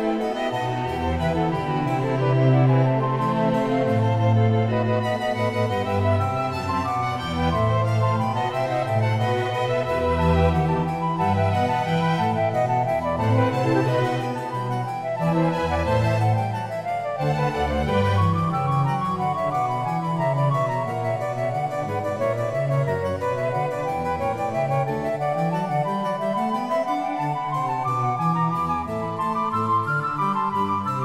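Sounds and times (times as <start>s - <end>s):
harpsichord playing baroque music: 0.0s - 31.0s.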